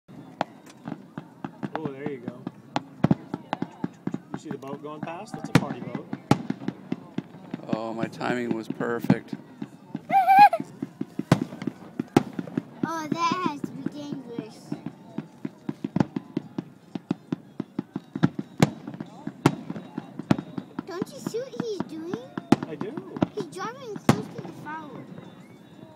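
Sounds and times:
fireworks popping: 0:00.1 - 0:25.8.

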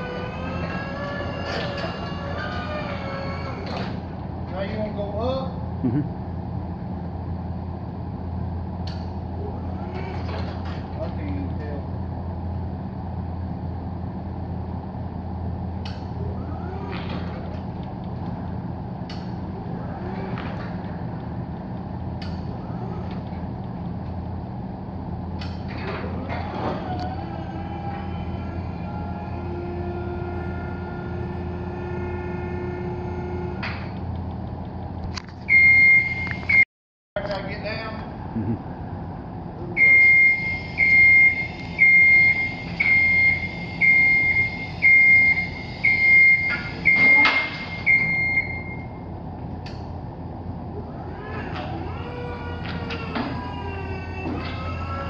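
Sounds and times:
hydraulic pump motor humming: 0:00.0 - 0:04.8, 0:08.1 - 0:36.6, 0:49.6 - 0:55.0.

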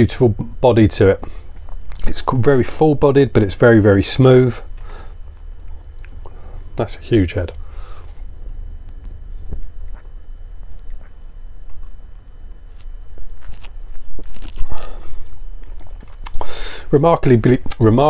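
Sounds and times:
breathy exhale: 0:04.8 - 0:05.2, 0:07.6 - 0:08.2, 0:14.6 - 0:15.3, 0:16.4 - 0:16.9.

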